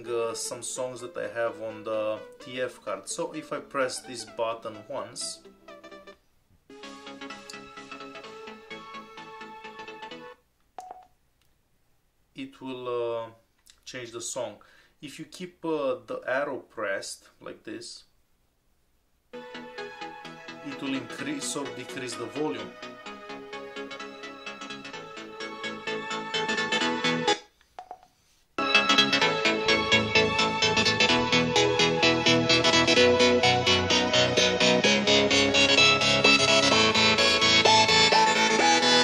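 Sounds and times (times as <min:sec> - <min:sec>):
song from portable speaker: 0:06.7 - 0:10.4, 0:19.4 - 0:27.5, 0:28.6 - 0:39.0.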